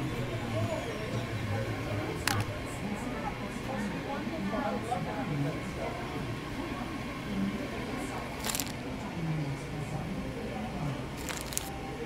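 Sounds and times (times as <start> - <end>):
murmur of background voices: 0.0 - 12.0
plastic food wrapping crinkling: 8.4 - 8.8, 11.2 - 11.8.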